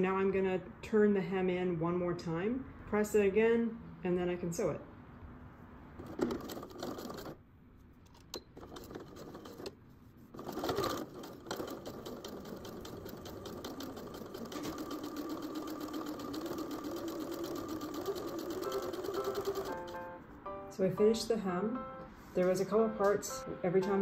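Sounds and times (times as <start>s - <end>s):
sewing machine stitching: 6.0s - 7.4s, 8.3s - 20.1s.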